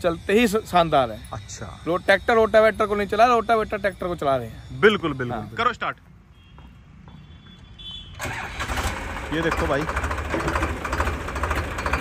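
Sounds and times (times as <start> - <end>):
tractor diesel engine starting: 8.2 - 12.0.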